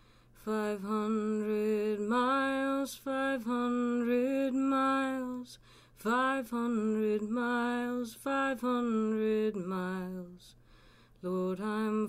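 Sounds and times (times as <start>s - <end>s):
woman singing a cappella: 0.4s - 12.0s.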